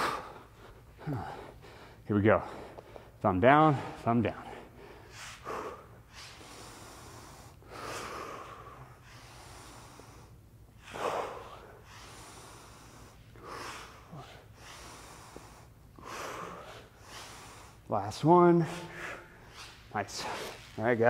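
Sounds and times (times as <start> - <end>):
man breathing hard: 0.0 - 20.8.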